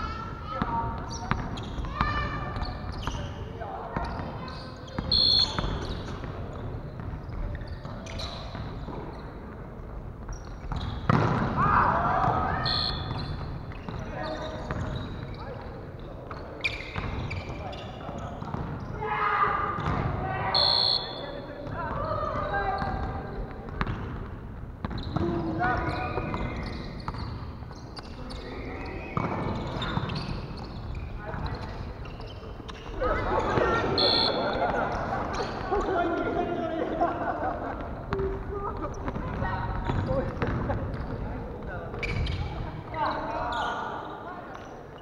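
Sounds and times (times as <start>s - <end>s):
ball hitting floor: 10.7s - 11.6s
players calling out: 11.5s - 15.0s, 18.9s - 23.3s, 30.9s - 41.2s.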